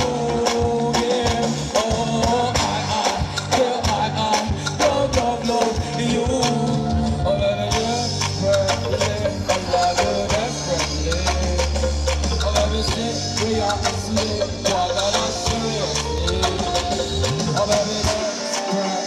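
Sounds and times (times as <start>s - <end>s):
deep bass line: 0.0s - 18.3s
live band playing upbeat song: 0.0s - 19.0s
wavering melody line: 2.0s - 19.0s.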